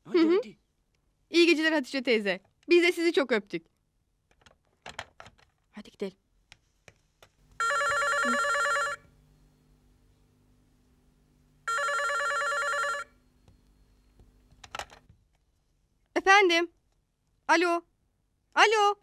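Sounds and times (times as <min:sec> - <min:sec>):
desk telephone ringing: 0:07.6 - 0:09.1, 0:11.6 - 0:13.2.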